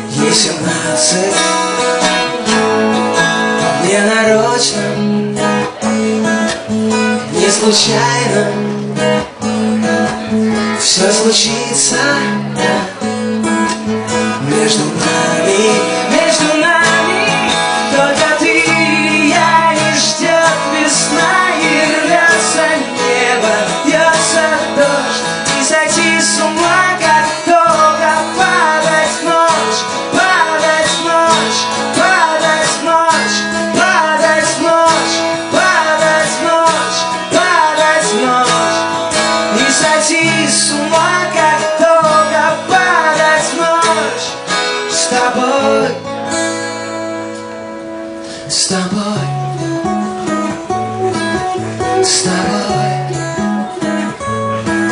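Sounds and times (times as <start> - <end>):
strummed acoustic guitar: 0.0 - 54.9.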